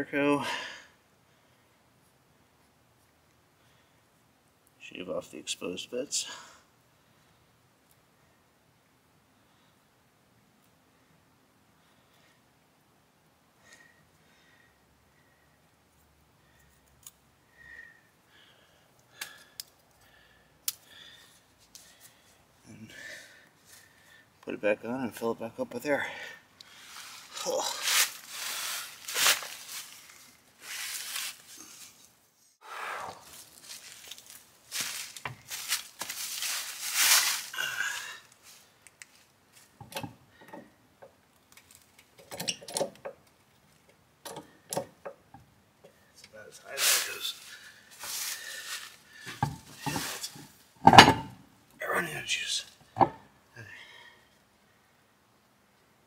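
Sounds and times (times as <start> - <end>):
rustling handling noise: 26.8 - 32.6, 33.2 - 37.6, 46.5 - 50.7.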